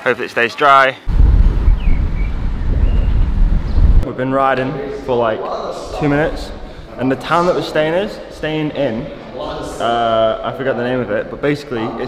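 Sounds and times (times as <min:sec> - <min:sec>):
wind buffeting microphone: 0:01.1 - 0:04.0.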